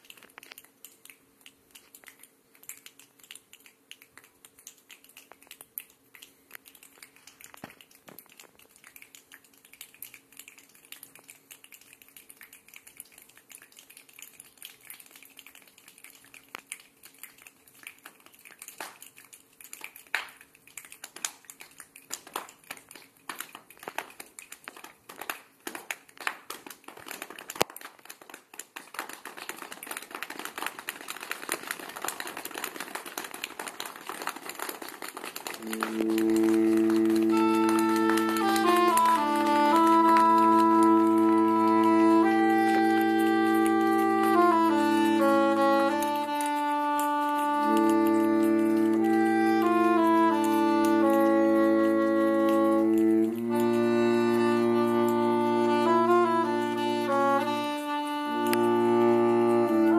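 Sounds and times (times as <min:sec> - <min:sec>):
sharp clicks and light taps: 0:00.0 - 0:39.1
applause: 0:17.9 - 0:59.9.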